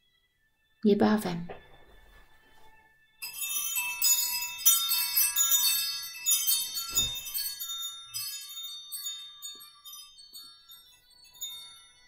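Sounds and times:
tinkling chimes: 1.8s - 12.0s.

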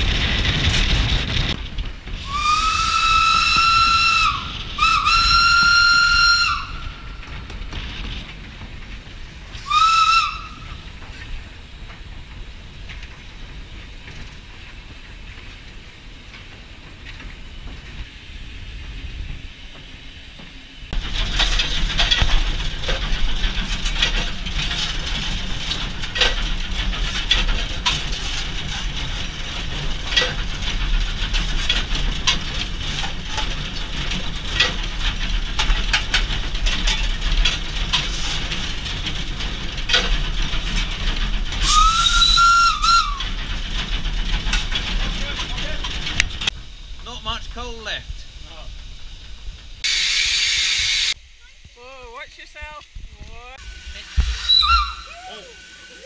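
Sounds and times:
steam locomotive rumble: 0.0s - 56.0s
steam whistle: 2.2s - 7.0s, 9.6s - 10.8s, 41.6s - 43.3s, 53.6s - 56.0s
knocks and clanks: 18.8s - 47.2s.

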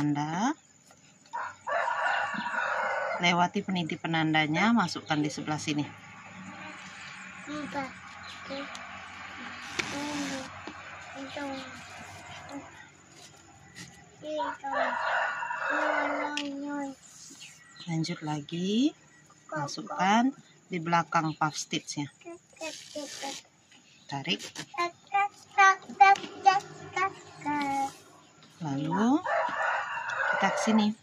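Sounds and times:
rooster crowing: 1.3s - 3.3s, 14.4s - 16.4s, 28.9s - 31.0s
child singing sing-song notes: 24.8s - 27.8s.

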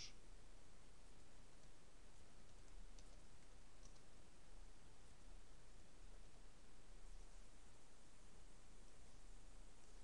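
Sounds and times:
low hiss and hum: 0.0s - 10.0s
faint keyboard clicks: 2.4s - 4.1s.

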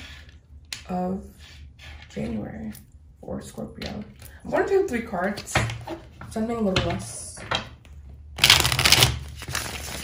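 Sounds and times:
cards being shuffled: 8.4s - 10.0s.

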